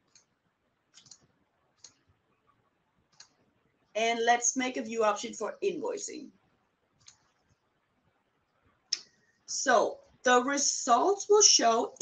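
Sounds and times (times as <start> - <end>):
faint mouse clicks: 0.0 - 2.1, 3.1 - 3.4, 7.0 - 7.6.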